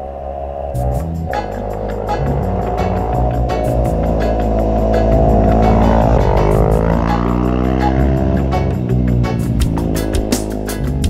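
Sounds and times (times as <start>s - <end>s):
motorcycle passing at speed: 0.0s - 11.0s
background music with steady beat: 0.8s - 11.0s.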